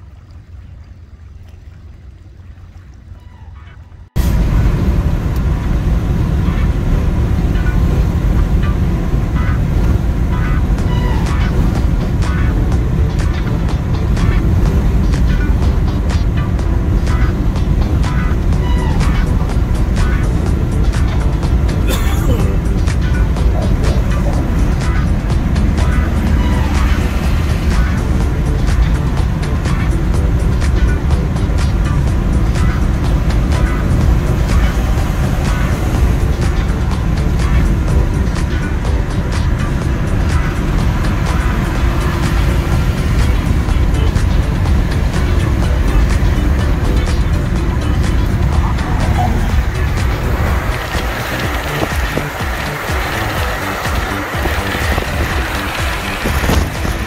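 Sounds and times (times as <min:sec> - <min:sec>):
car road rumble from inside: 0:00.1 - 0:57.0
music playing: 0:04.2 - 0:57.0.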